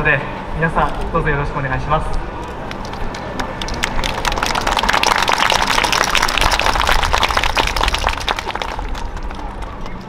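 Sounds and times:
applause: 2.6s - 9.8s.

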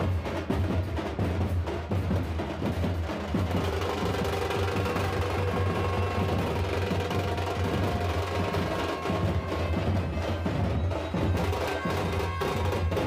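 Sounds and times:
drum beats: 0.0s - 13.0s.

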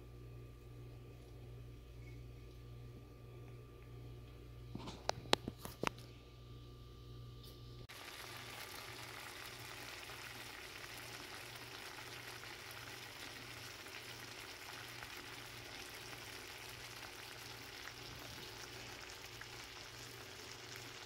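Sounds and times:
faint low hum: 0.0s - 21.0s
pan liquid bubbling: 7.9s - 21.0s
shrimp sizzling in a pan: 7.9s - 21.0s.

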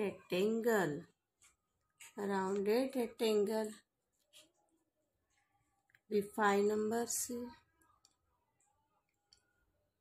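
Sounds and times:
woman speaking: 0.0s - 1.2s, 2.1s - 3.8s, 6.1s - 7.7s.

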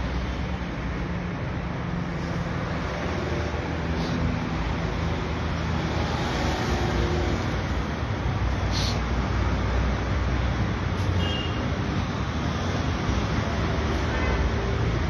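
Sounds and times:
street traffic rumble: 0.0s - 15.0s.

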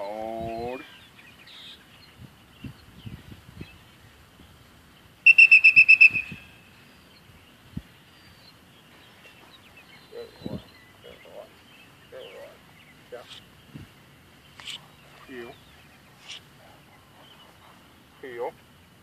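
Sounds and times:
dog-training whistle trill: 5.2s - 6.5s
faint bird chirps: 5.2s - 18.7s
light steps or rustling: 7.7s - 18.3s.

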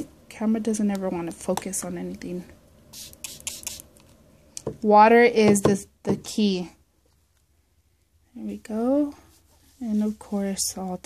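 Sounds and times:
pump sprayer spritzes: 2.9s - 3.8s.

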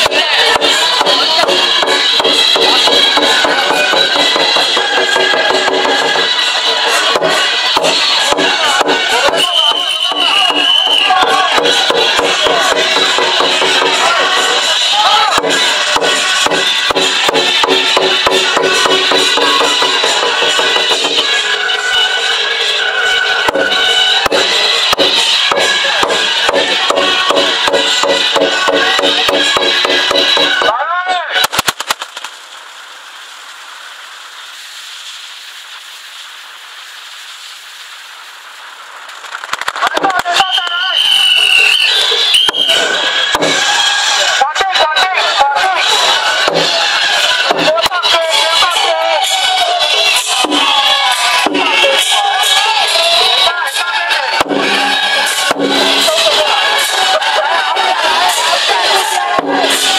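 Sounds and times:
firecrackers cracking: 0.0s - 21.4s, 31.3s - 44.6s, 45.2s - 59.9s
procession drum: 0.0s - 21.6s, 23.0s - 30.8s, 41.5s - 59.9s.

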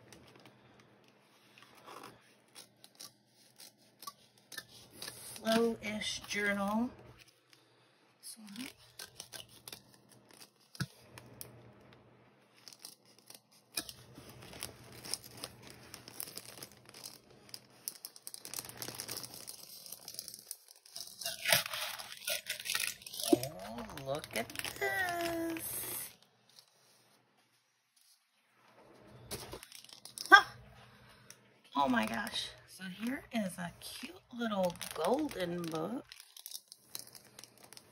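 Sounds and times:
packaging crinkling: 0.0s - 6.4s, 7.1s - 27.2s, 28.0s - 37.9s
paper envelope tearing: 8.4s - 11.3s, 12.5s - 27.0s.

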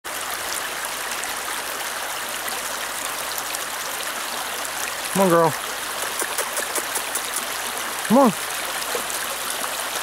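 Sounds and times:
stream running over rocks: 0.0s - 10.0s.

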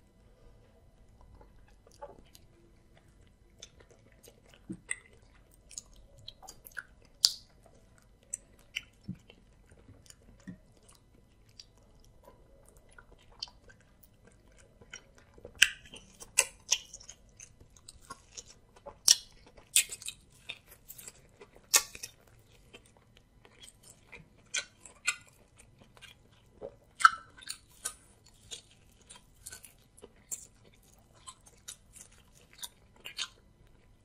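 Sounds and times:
chewing: 0.1s - 34.0s.

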